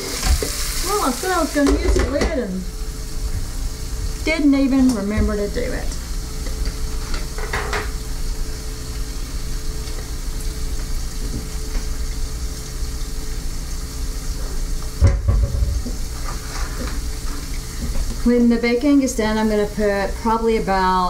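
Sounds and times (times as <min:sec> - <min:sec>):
bacon sizzling in a skillet: 0:00.0 - 0:21.0
thump: 0:15.0 - 0:15.9.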